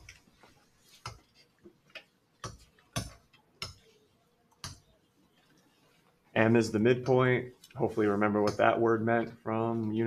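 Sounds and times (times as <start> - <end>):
stylus tapping on tablet screen: 0.0 - 5.0, 8.3 - 8.8.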